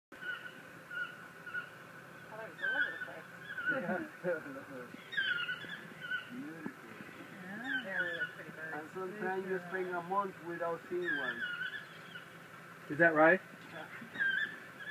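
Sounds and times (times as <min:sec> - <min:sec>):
toucans calling: 0:00.2 - 0:14.9.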